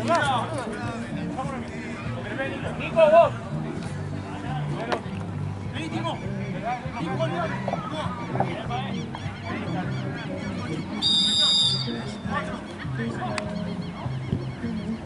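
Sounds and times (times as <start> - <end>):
murmuring voices: 0.0 - 15.0
short chirping calls: 9.3 - 12.2
referee's whistle blast: 11.0 - 12.2.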